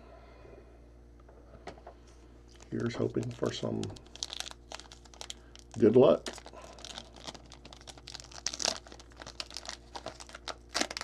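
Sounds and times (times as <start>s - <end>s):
foil wrapper crinkling: 2.5s - 11.0s
card pack torn open by hand: 2.6s - 11.0s.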